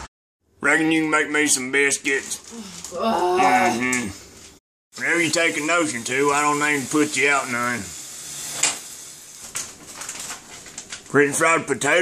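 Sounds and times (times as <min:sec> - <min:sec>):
household handling noise burst: 0:04.2 - 0:11.2.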